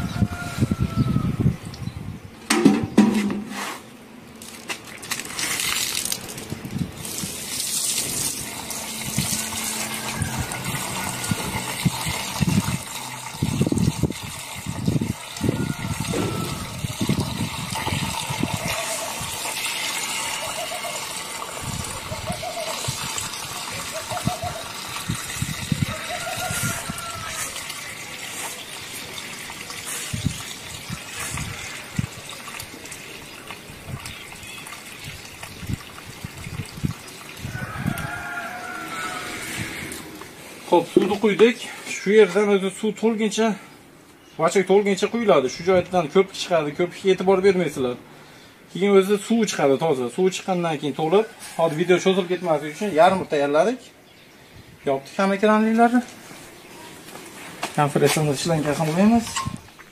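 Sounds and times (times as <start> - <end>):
water gushing into funnel: 7.0 - 40.5.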